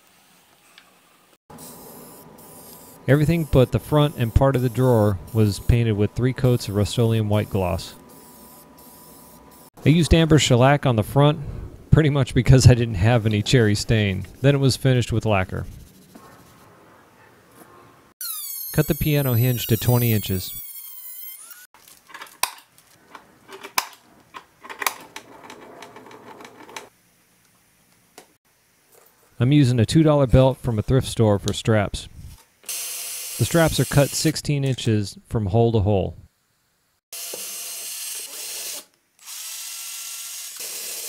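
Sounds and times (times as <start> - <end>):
spray paint can hissing: 1.6 - 5.7.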